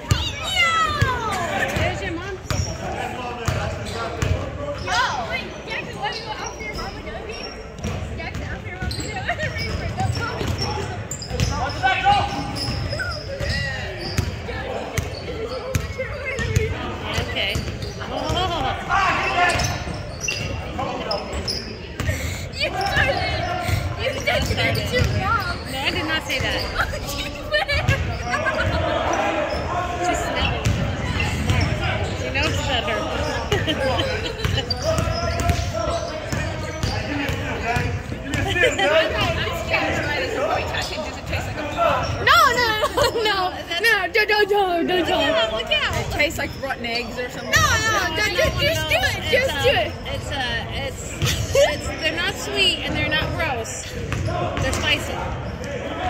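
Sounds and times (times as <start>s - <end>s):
players' voices echoing: 0.0s - 56.0s.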